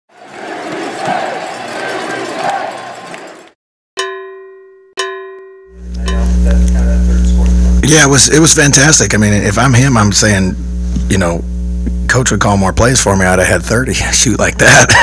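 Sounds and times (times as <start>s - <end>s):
crowd noise: 0.1s - 3.6s
ringing cowbell strikes: 4.0s - 6.5s
steady low hum: 5.8s - 15.0s.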